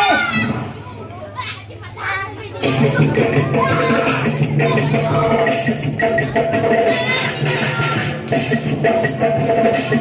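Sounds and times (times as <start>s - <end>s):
children's voices and chatter: 0.0s - 8.4s.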